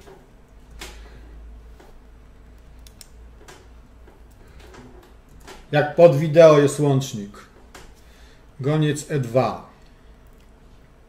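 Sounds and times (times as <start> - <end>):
low steady hum: 0.0 - 11.0
computer mouse clicks: 1.7 - 5.6.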